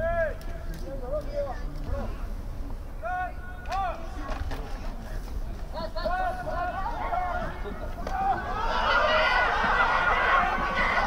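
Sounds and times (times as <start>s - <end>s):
people shouting: 6.8s - 11.0s.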